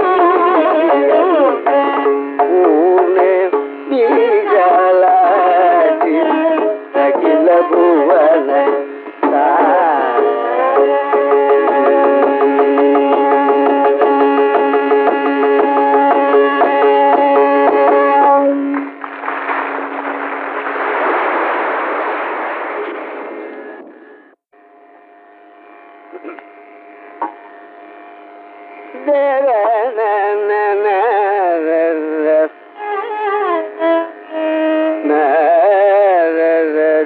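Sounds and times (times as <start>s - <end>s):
vocal concert music: 2.4s - 11.2s
audience applause: 18.7s - 23.4s
quiet steady drone: 22.3s - 36.1s.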